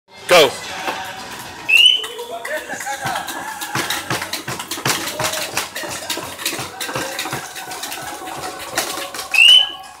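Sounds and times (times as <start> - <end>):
winch grinder cranking: 1.1 - 10.0
clicking and knocking: 2.0 - 9.8
rising whistle-like tones: 9.3 - 9.9.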